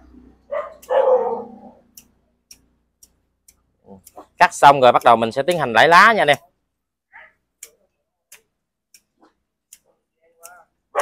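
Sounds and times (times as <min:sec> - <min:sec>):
dog barking: 0:00.5 - 0:01.8
pruning scissors snipping: 0:01.9 - 0:06.4.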